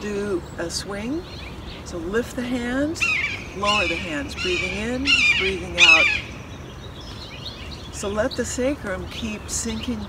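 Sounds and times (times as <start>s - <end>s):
low background noise: 0.0s - 10.0s
bird harsh wavering call: 3.0s - 7.6s.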